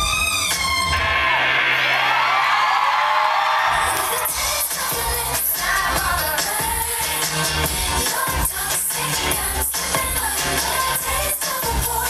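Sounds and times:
crowd cheering: 0.0 - 5.8
live pop music over sound system: 0.0 - 12.0.

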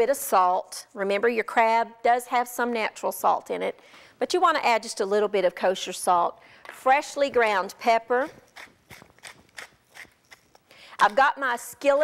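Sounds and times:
pepper mill grinding: 8.1 - 12.0.

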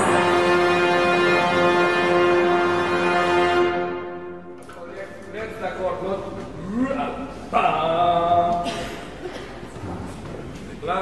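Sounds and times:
orchestra chord: 0.0 - 4.6
man talking: 4.6 - 9.1, 9.7 - 11.0.

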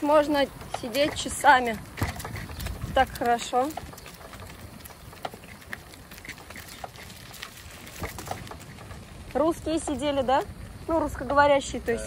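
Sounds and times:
bike clicking and rattling: 0.0 - 11.8
bicycle tyres rumbling on bricks: 0.0 - 11.9
wind: 0.0 - 12.0.

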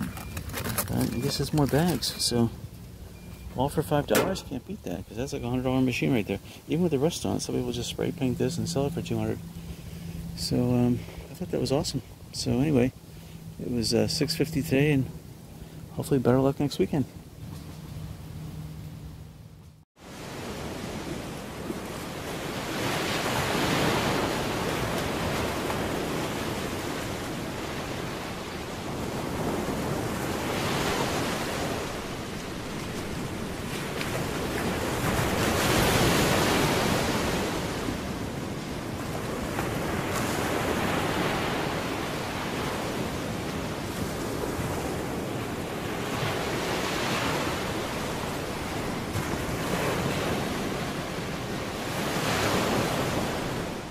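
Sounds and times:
ocean waves washing in: 2.1 - 19.2, 20.0 - 53.9.

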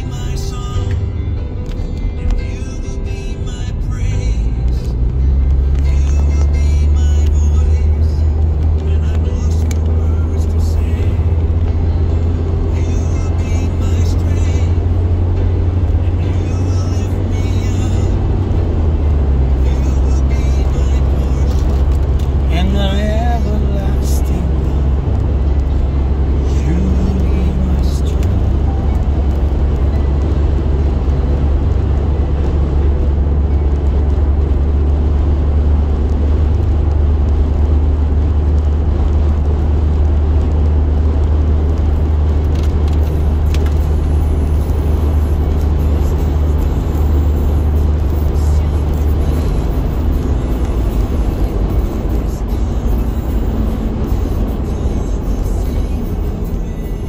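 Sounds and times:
car cabin road and engine rumble: 0.0 - 57.0.

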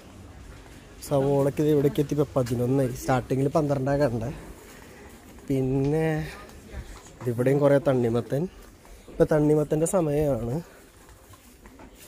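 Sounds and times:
faint market background: 0.0 - 12.0.

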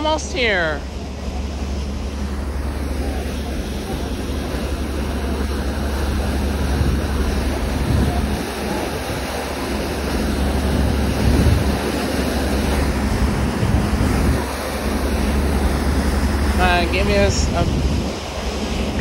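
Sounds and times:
low rumble: 0.0 - 19.0
rushing boat wake: 0.0 - 19.0
wind buffeting microphone: 2.3 - 19.0.

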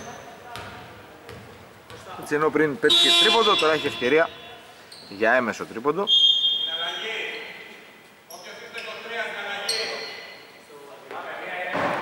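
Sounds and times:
basketball bouncing on hardwood: 0.5 - 2.2.

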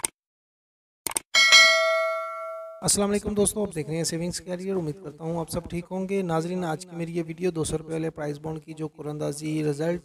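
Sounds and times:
bell ding: 1.4 - 3.0.

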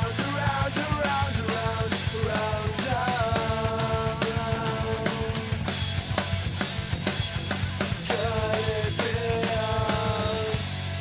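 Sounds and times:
pop-punk band playing: 0.0 - 11.0.

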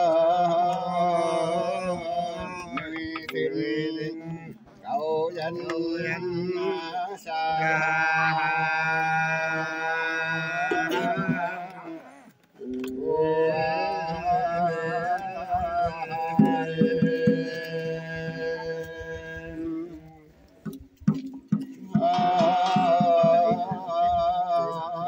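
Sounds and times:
person chanting held notes: 0.0 - 25.0.

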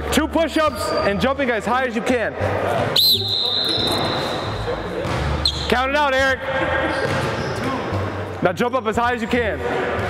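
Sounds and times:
pea whistle blast: 3.0 - 4.4.

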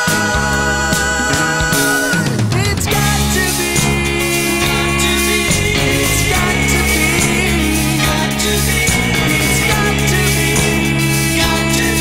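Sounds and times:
bass line: 0.0 - 12.0
rock band playing chords: 0.0 - 12.0.

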